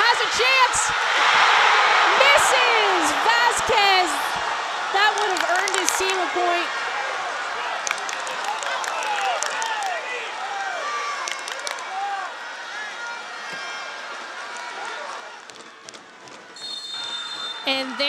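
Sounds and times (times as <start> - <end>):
footballers shouting: 0.0 - 18.0
referee's whistle blast: 16.6 - 17.8.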